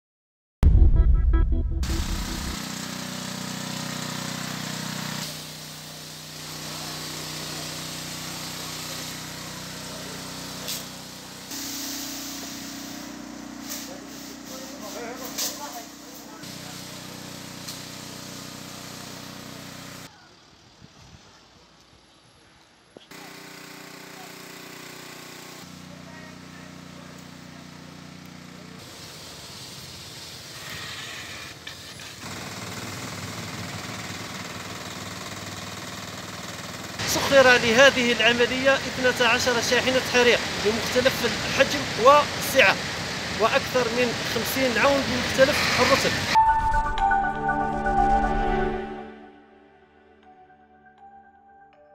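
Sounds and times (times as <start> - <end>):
spray pump running: 2.2 - 20.1, 23.1 - 46.4
hose spraying hiss: 2.7 - 20.1, 28.8 - 32.3, 37.1 - 46.4
people talking: 13.8 - 16.9, 37.0 - 42.8, 43.4 - 46.3.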